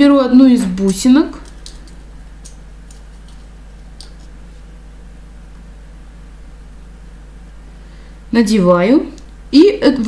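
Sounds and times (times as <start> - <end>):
steady low hum: 0.0 - 10.0
bead and wire clicking: 1.4 - 4.4.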